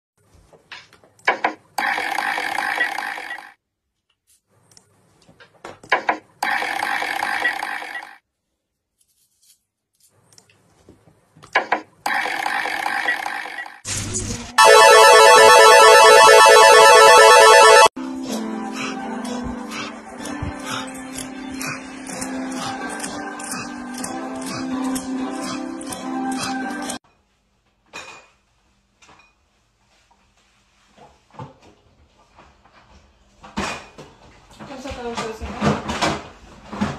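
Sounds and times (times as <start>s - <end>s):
slot machine spin: 12.1s - 13.8s, 14.6s - 18.0s
jackpot jingle with warble: 14.6s - 17.9s
slot machine clicks: 14.6s - 17.9s.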